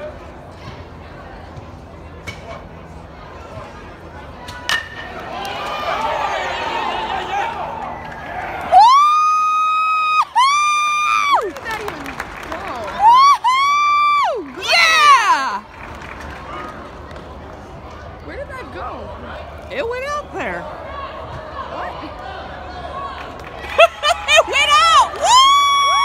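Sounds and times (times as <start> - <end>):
bat hitting baseball: 4.5 - 5.1
crowd cheering: 4.7 - 17.4, 20.5 - 26.0.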